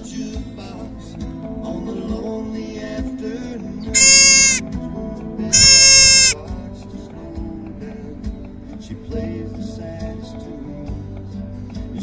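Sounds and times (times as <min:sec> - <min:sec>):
elk high-pitched mews: 0:04.0 - 0:04.6, 0:05.5 - 0:06.4.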